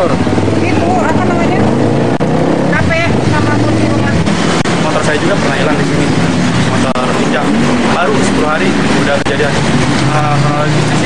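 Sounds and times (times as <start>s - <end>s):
traffic engine hum: 0.0s - 11.0s
woman speaking: 0.5s - 1.8s, 2.6s - 4.4s.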